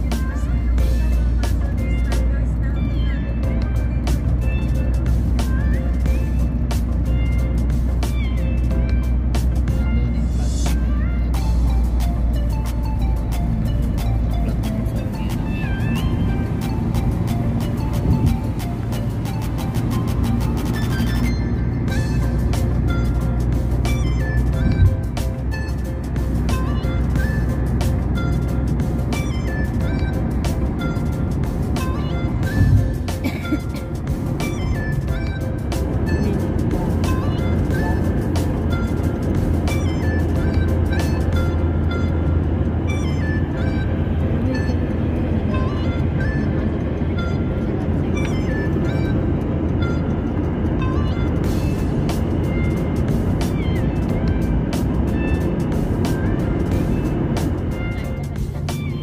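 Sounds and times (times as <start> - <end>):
car driving hum: 0.0 - 59.0
music with quick beat: 0.0 - 59.0.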